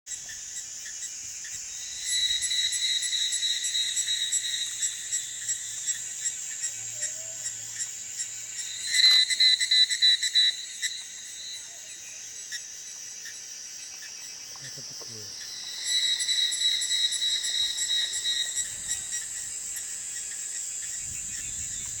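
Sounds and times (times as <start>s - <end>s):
cicada trilling: 0.1s - 22.0s.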